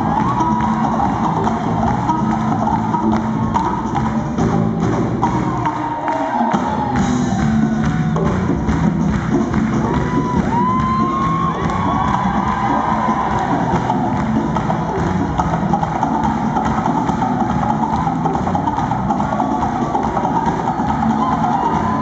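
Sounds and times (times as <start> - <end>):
crowd cheering and shouting: 0.0 - 22.0
live band music: 0.0 - 22.0.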